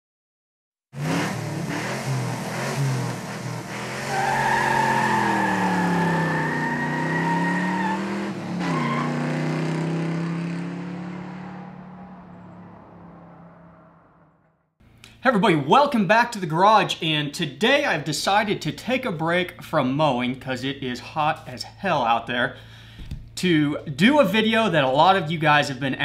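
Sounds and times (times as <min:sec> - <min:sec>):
car engine revving hard: 0:01.0 - 0:12.3.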